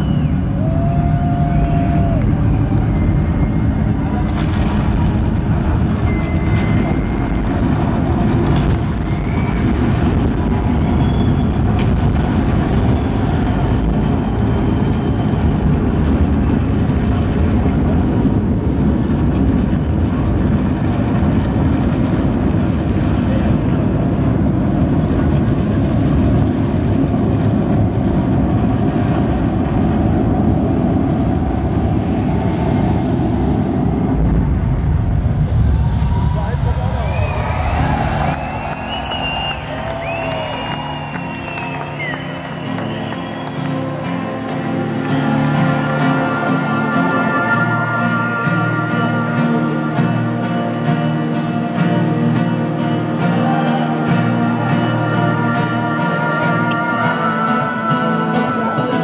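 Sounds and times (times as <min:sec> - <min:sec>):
whistles: 0:00.0 - 0:00.6, 0:02.8 - 0:04.0, 0:05.9 - 0:07.5, 0:08.9 - 0:11.8, 0:14.2 - 0:15.6, 0:36.8 - 0:44.1
audience cheering: 0:00.0 - 0:17.4, 0:35.9 - 0:47.6, 0:53.2 - 0:55.8
low rumbling drone: 0:00.0 - 0:59.0.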